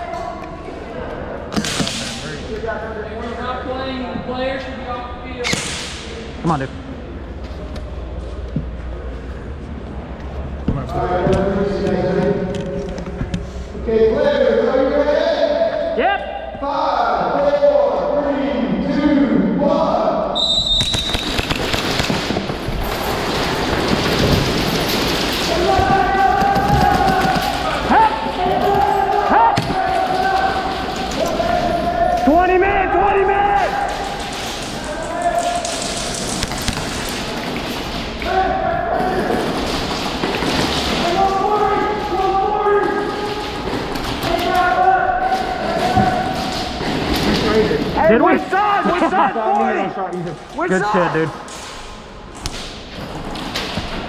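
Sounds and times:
airsoft guns firing and impacts: 20.7 - 27.9
players shouting: 25.4 - 36.3, 38.1 - 51.4.

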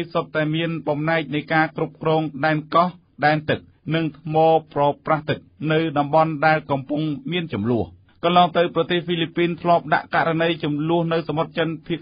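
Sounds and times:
newsreader speaking: 0.0 - 12.0.

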